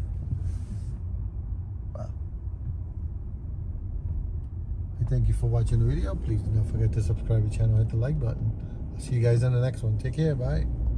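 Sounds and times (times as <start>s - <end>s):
car driving rumble from inside: 0.0s - 10.9s.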